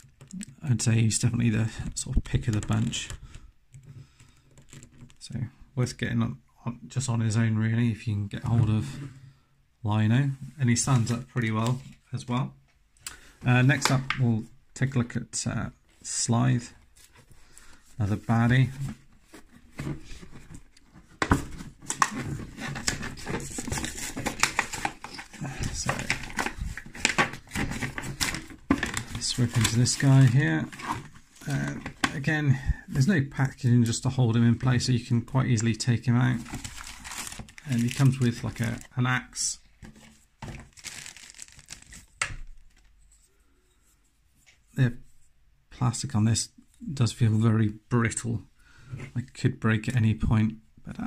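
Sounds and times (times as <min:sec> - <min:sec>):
plastic packaging crinkling: 0:21.9 - 0:32.2, 0:36.3 - 0:39.0, 0:39.8 - 0:43.0.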